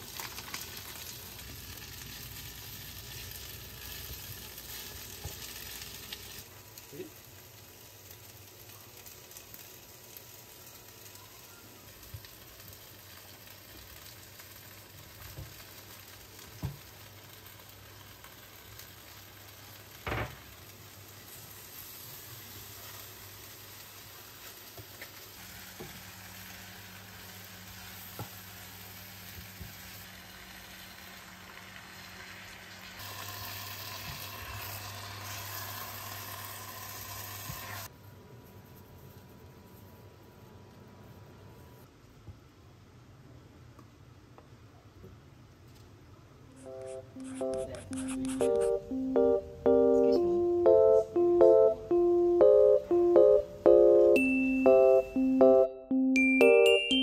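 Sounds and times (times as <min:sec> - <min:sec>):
food sizzling in a pan: 0:00.0 - 0:37.9.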